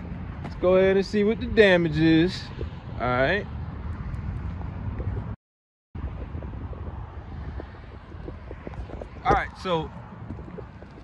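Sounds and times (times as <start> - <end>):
wind on microphone: 0.0 - 5.4, 6.0 - 11.0.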